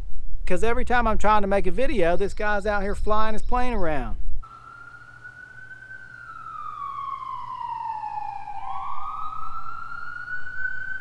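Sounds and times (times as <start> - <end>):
siren wailing: 4.4 - 11.0.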